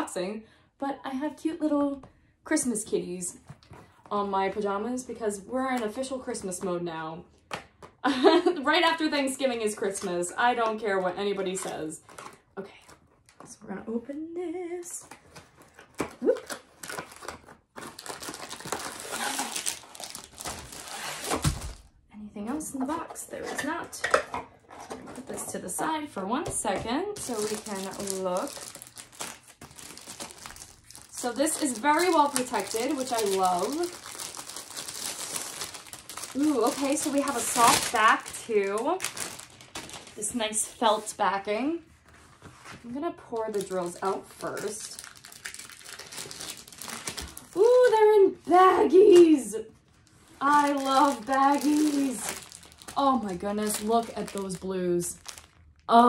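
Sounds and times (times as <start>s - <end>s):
plastic wrapping crinkling: 15.0s - 21.9s, 27.2s - 41.1s, 42.0s - 56.0s.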